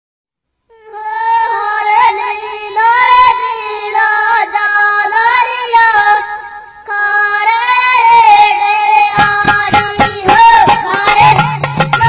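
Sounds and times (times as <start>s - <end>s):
high-pitched voice singing folk melody: 0.7s - 12.0s.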